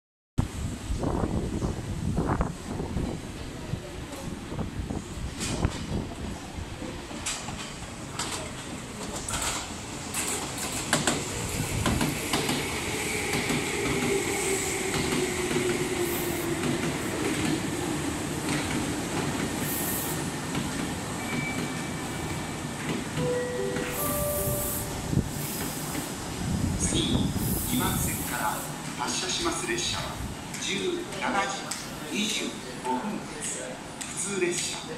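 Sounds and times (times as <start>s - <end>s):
train brakes squealing: 21.2s - 22.6s.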